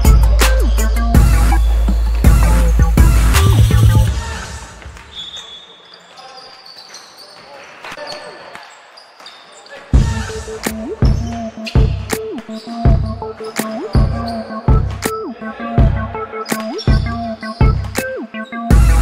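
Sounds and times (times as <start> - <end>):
hip-hop backing track: 0.0 - 5.1, 9.9 - 19.0
faint voices: 12.4 - 18.4.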